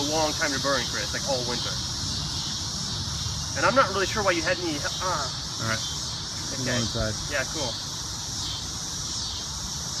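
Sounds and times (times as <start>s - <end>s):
steady high hiss: 0.0s - 10.0s.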